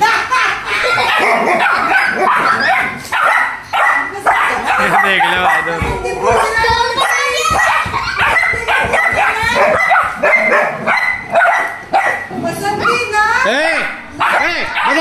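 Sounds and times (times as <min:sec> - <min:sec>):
puppies yipping and whining: 0:00.8 - 0:12.3, 0:14.2 - 0:15.0.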